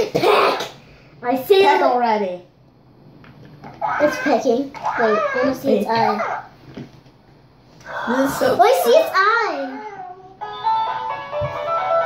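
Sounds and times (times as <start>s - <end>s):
toy playing electronic tune: 10.4s - 12.0s.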